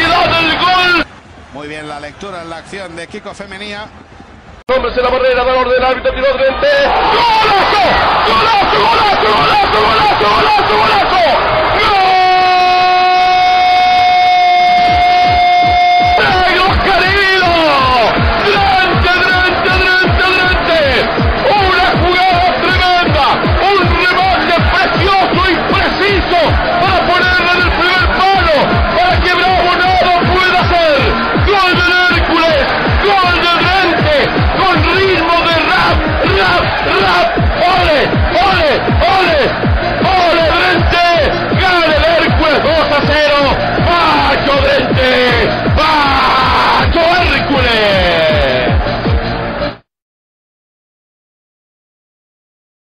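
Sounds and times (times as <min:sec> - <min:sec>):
commentator shouting goal: 0:00.0 - 0:01.1, 0:04.8 - 0:48.9
background music with steady beat: 0:06.8 - 0:49.9.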